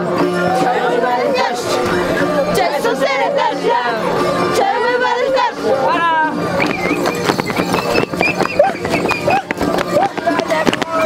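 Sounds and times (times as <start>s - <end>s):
crowd shouting: 0.0s - 11.0s
feet stamping on concrete: 6.6s - 11.0s.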